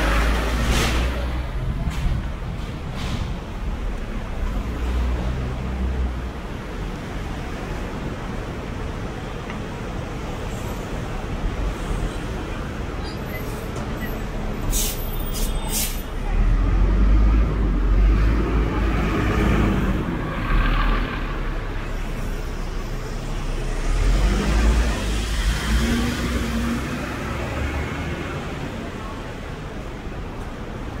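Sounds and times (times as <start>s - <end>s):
bus engine rumble: 0.0s - 31.0s.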